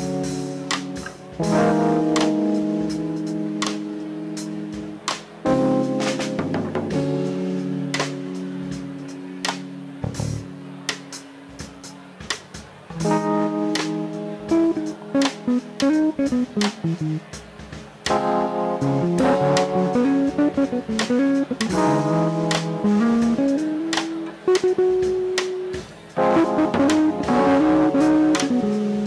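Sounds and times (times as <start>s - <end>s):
electric guitar melody: 0.0s - 11.6s, 12.9s - 29.0s
jazzy band music: 0.0s - 29.0s.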